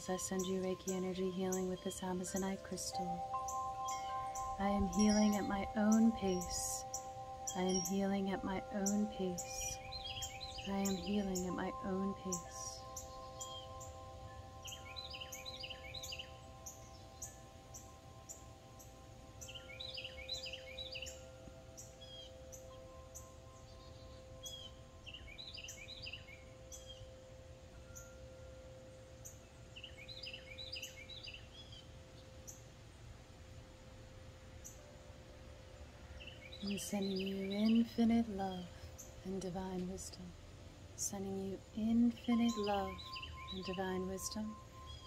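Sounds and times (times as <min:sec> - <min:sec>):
low background rumble: 0:00.0 - 0:15.0
bird chirping: 0:00.0 - 0:33.1, 0:34.4 - 0:45.0
steady ringing tones: 0:00.0 - 0:45.0.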